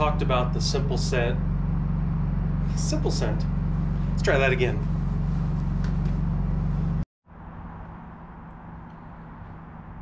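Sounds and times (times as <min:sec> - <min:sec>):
sawmill engine running: 0:00.0 - 0:07.0
vehicle engine hum: 0:00.0 - 0:10.0.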